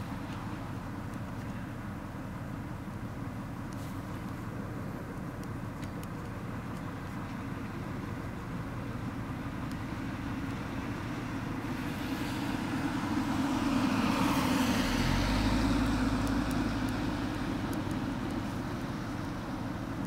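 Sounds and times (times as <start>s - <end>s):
deep engine rumble: 0.0s - 20.0s
traffic noise: 0.0s - 20.0s.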